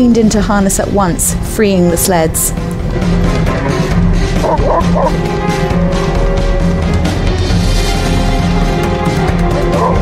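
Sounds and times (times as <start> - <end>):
background music: 0.0 - 10.0
dogs whining: 4.4 - 5.2.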